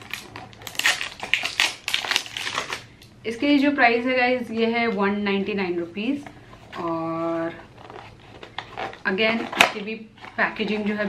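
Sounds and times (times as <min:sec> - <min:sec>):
cardboard carton crinkling: 0:00.0 - 0:02.9, 0:06.6 - 0:11.0.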